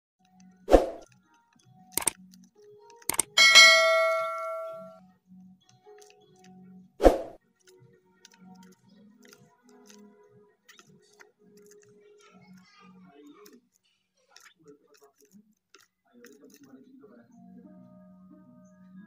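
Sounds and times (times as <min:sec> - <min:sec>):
mouse click: 0:02.0 - 0:02.2, 0:03.1 - 0:03.4
notification bell ding: 0:03.2 - 0:04.9.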